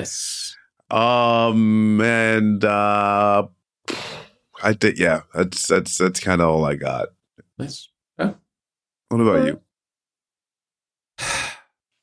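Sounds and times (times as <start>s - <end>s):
man sighing: 11.2s - 11.7s.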